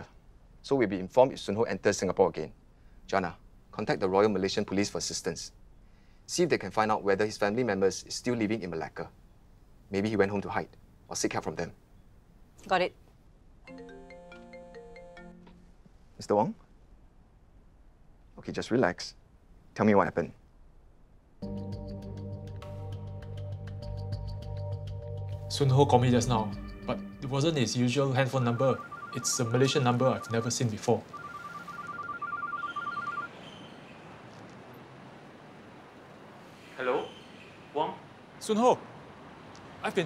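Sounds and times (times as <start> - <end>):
phone ringtone melody: 13.7 - 15.5, 26.5 - 33.4.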